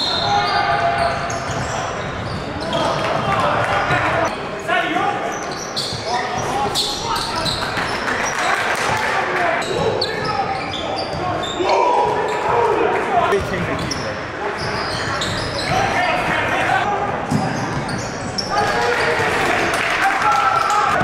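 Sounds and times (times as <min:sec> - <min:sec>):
sneakers squeaking on court: 0:00.0 - 0:04.4, 0:05.3 - 0:08.1, 0:09.6 - 0:12.6, 0:13.3 - 0:16.4, 0:17.3 - 0:18.6.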